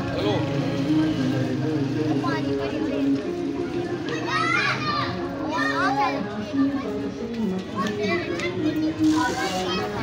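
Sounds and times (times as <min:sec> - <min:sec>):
children talking or calling: 0:00.0 - 0:10.0.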